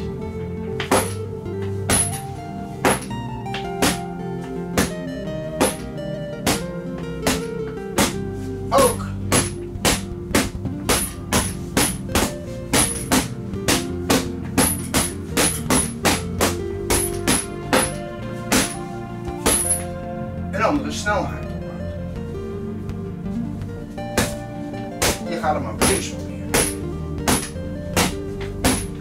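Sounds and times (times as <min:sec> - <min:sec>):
background music: 0:00.0 - 0:29.0
sticks whacking a boxing bag: 0:00.8 - 0:01.3, 0:01.9 - 0:02.2, 0:02.8 - 0:08.2, 0:08.8 - 0:18.8, 0:19.4 - 0:19.9, 0:24.2 - 0:24.4, 0:25.0 - 0:29.0.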